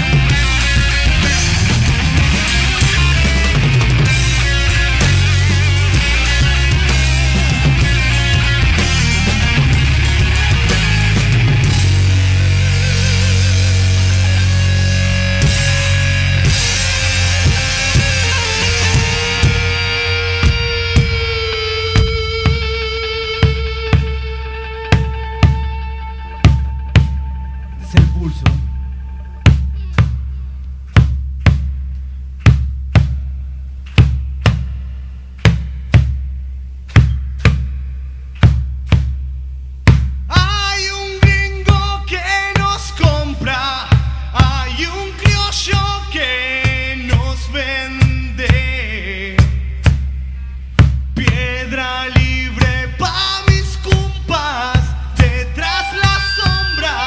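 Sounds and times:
deep drum beat: 0.0s - 57.0s
high note wavering in vibrato: 55.6s - 57.0s.

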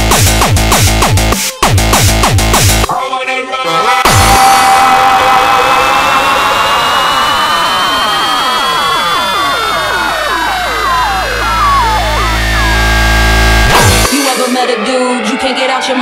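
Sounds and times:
high synth tone: 4.0s - 16.0s
deep bass drone: 4.1s - 14.2s
synth falling pitch sweeps: 4.1s - 16.0s.

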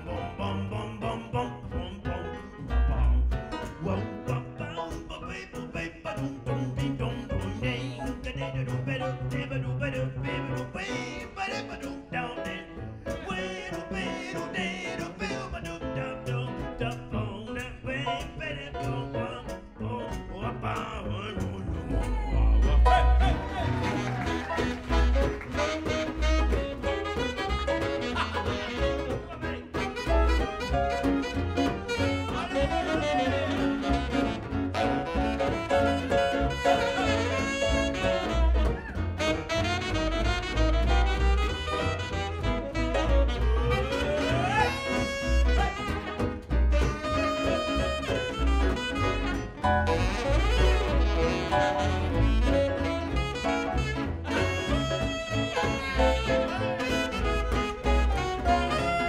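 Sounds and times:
double bass notes: 0.0s - 59.0s
jazz band playing: 0.0s - 59.0s
sliding lead melody: 0.0s - 59.0s.

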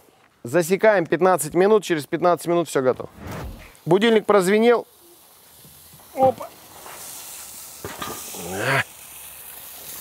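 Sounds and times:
steady hiss: 2.4s - 10.0s.

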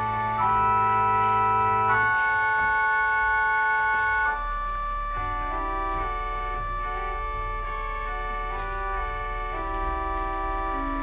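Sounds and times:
organ sustained chord: 0.0s - 11.0s.

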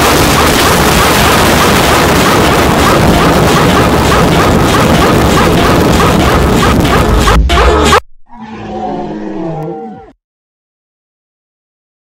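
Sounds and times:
heavily distorted looped noise: 0.0s - 8.0s.

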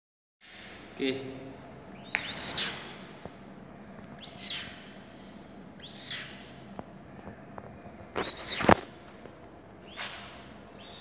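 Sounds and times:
chicks peeping: 1.9s - 3.1s, 4.1s - 6.7s, 7.4s - 9.0s.

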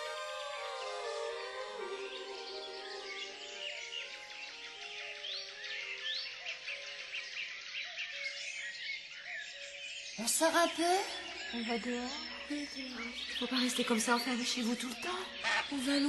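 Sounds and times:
song music: 0.0s - 4.1s
birds chirping and singing: 0.0s - 16.0s.

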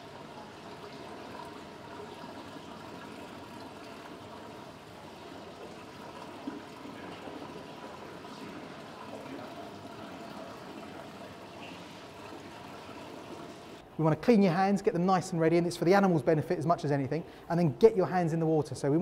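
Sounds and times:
water running and trickling: 0.0s - 13.8s.

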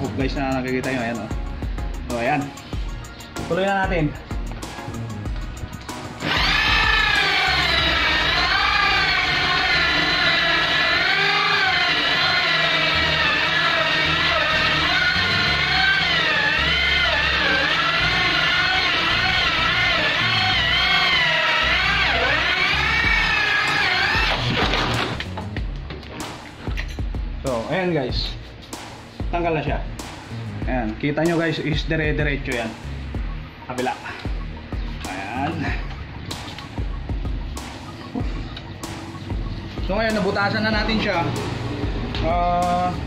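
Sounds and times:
electric drill cutting wood: 5.9s - 25.3s.

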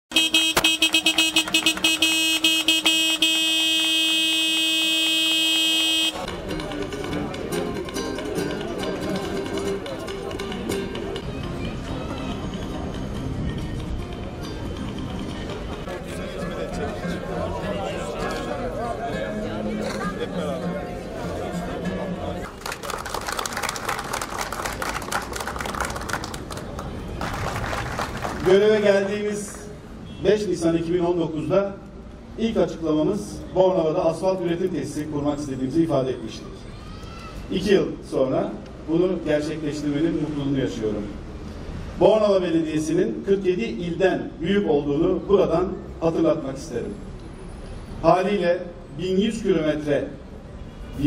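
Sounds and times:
machine horn tooting: 0.1s - 6.3s
crowd applauding: 0.6s - 4.7s, 22.4s - 28.6s.

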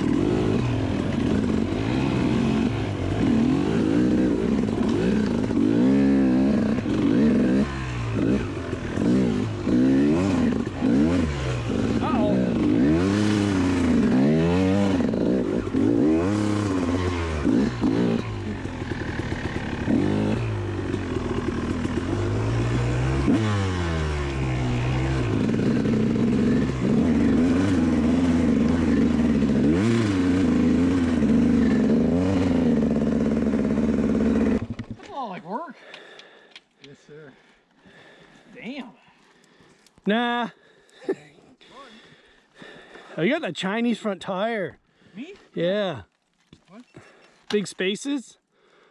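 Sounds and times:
dirt bike engine revving: 0.0s - 35.0s.

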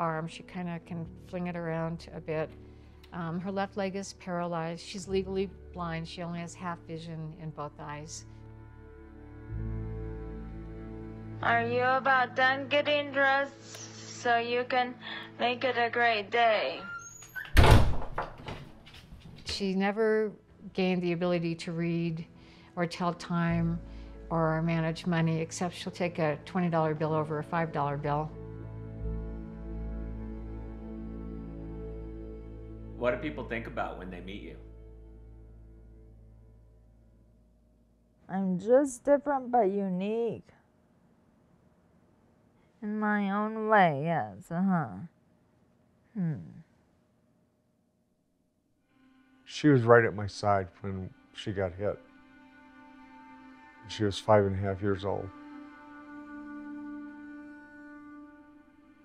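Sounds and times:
door shutting with a thud: 17.2s - 19.6s
person saying hmm: 46.1s - 46.6s.

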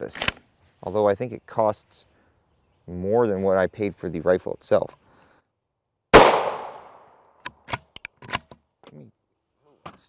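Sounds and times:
rifle shot echoing: 6.2s - 7.1s.

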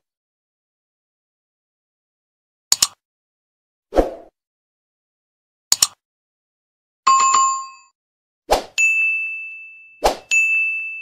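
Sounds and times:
short swish: 3.9s - 4.3s
notification bell ding: 7.1s - 7.9s, 8.8s - 11.0s.

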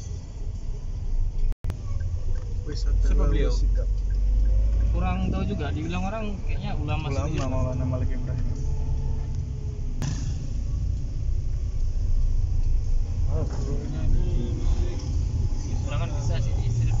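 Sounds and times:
car engine rumble: 0.0s - 17.0s
tyres on road: 0.0s - 17.0s.

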